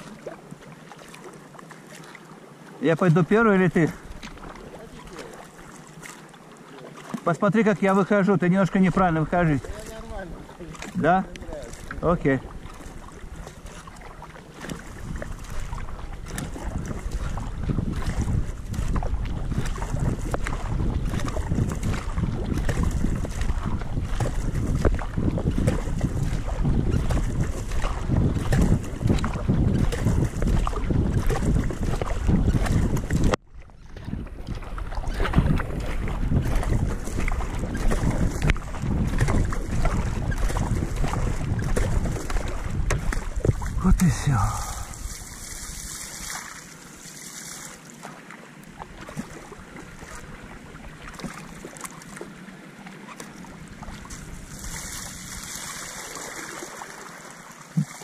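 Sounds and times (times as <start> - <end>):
paddle strokes splashing water: 0.0 - 58.0
wind buffeting microphone: 8.4 - 46.3.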